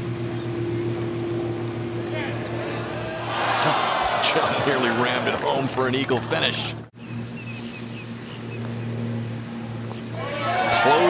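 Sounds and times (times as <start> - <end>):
steady low hum: 0.0 - 11.0
bird chirping: 7.0 - 9.2.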